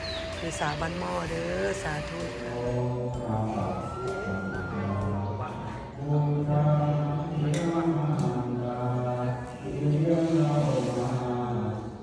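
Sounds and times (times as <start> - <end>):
man chanting in a low voice: 2.6 - 12.0.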